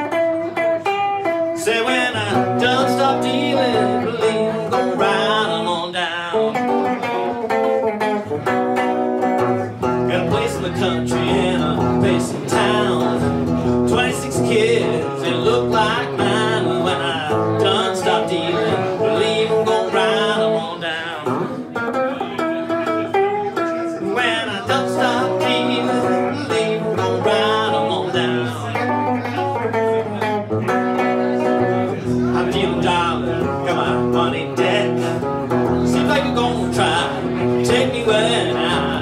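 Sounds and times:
electric guitar playing blues: 0.0 - 39.0.

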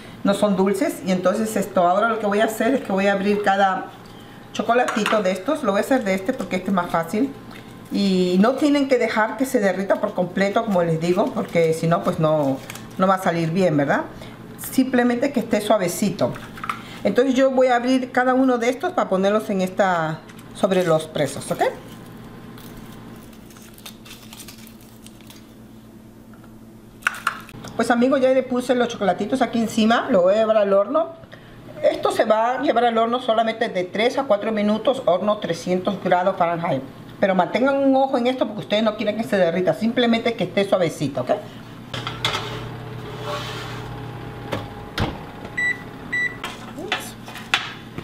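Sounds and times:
oven humming: 0.0 - 30.7, 34.4 - 48.0
foil crinkling while unwrapping: 9.7 - 13.4, 20.3 - 25.6
oven door thud: 44.5 - 45.6.

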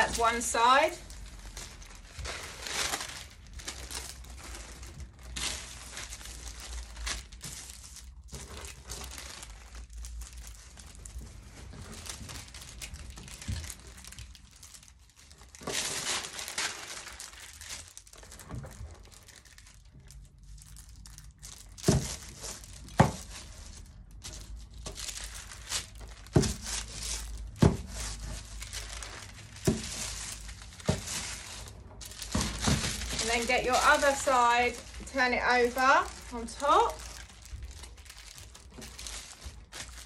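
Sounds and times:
crisp packets crinkling: 0.0 - 40.0.

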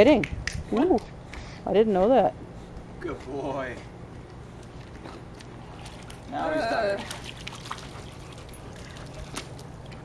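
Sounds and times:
water trickling and dripping: 5.4 - 10.0.

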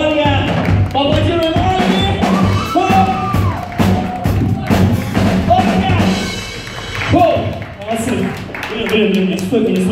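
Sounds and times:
rock band playing live: 0.0 - 8.1
drums steady beat: 0.0 - 9.9.

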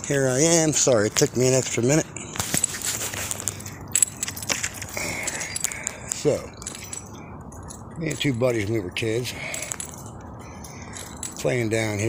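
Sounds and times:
light metallic jingle: 0.0 - 12.0
clicks and rustling: 2.3 - 8.6.

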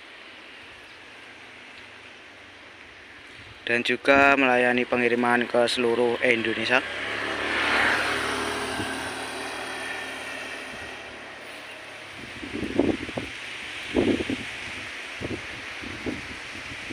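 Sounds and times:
steady rushing sound: 4.1 - 16.9.

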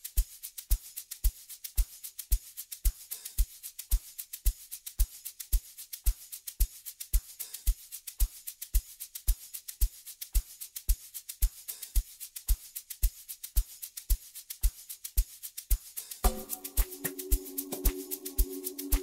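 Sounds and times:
shaker and percussion ticks: 0.0 - 19.0
kick drum: 15.7 - 18.0.

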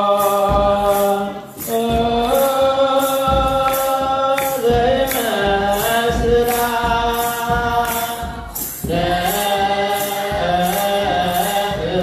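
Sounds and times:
drum beating steady rhythm: 0.0 - 12.0
young choir chanting a hymn: 0.0 - 12.0.

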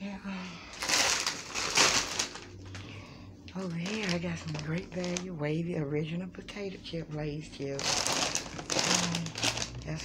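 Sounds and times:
plastic chip bag crinkling: 0.7 - 5.4, 7.6 - 10.0.

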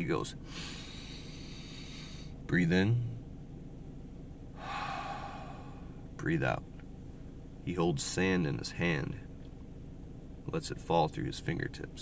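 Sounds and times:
man breathing in deeply: 0.4 - 2.4, 4.6 - 6.0.

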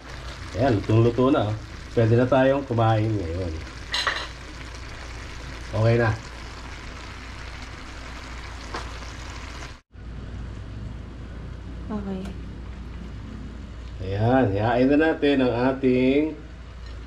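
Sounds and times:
beans sizzling in a wok: 0.0 - 9.8.

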